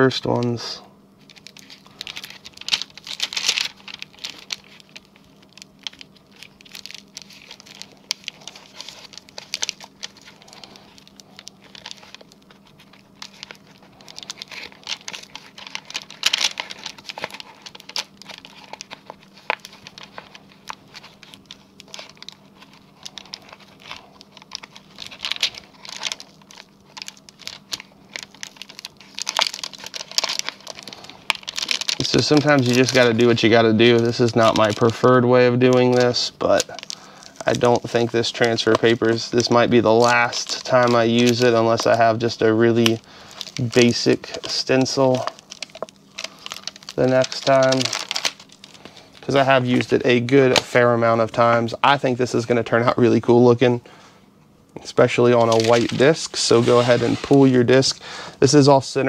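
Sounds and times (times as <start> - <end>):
plastic sheets crinkling: 1.2 - 54.0, 54.8 - 59.0.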